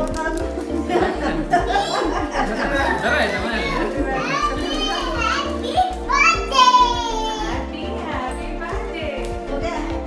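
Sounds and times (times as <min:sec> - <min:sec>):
background music with steady beat: 0:00.0 - 0:10.0
people talking: 0:00.0 - 0:10.0
people laughing: 0:00.4 - 0:04.4.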